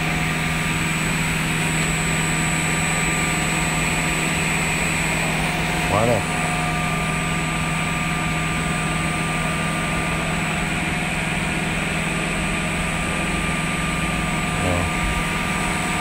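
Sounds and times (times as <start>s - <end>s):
electric motor hum with whine: 0.0s - 16.0s.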